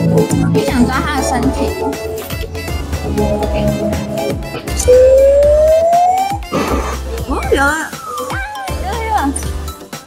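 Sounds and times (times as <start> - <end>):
rising electronic tone: 2.8 - 6.5.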